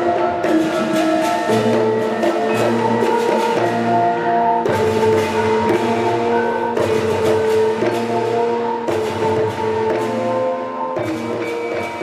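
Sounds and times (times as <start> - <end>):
bamboo flutes: 0.0 - 12.0
metallophones and gongs ringing: 0.0 - 12.0.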